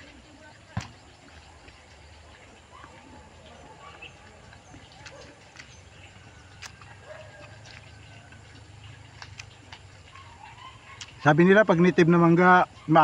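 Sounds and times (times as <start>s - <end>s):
crunchy chewing of fruit: 0.8s - 11.6s.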